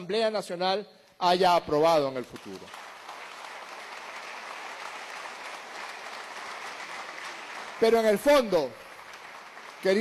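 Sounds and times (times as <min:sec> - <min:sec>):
people applauding: 0:02.1 - 0:10.0.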